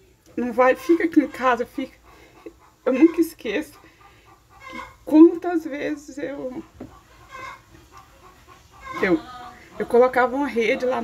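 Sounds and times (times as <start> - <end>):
chickens clucking: 0.2 - 11.0.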